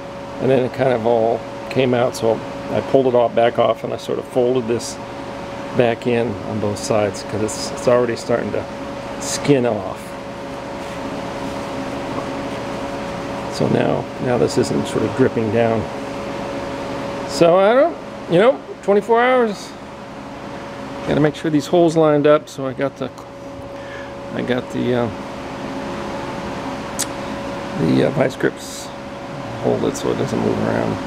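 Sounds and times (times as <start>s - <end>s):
machine humming: 0.0s - 31.0s
sharp click: 27.0s - 27.2s.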